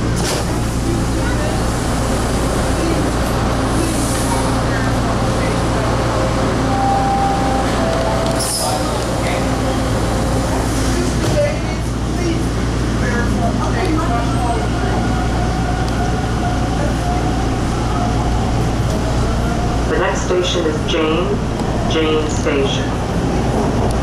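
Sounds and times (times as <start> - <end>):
murmur of passengers' voices: 0.0 - 24.0
subway car equipment humming: 0.0 - 24.0.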